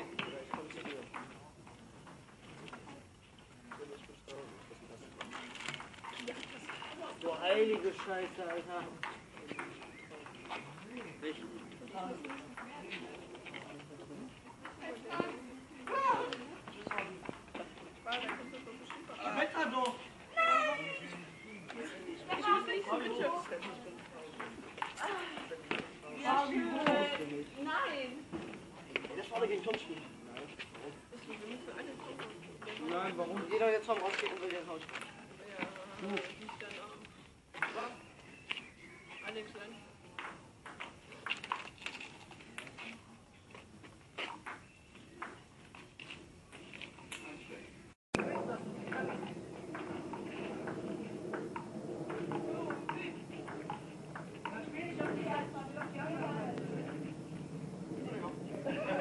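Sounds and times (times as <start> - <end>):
faint voices: 47.2 - 59.0.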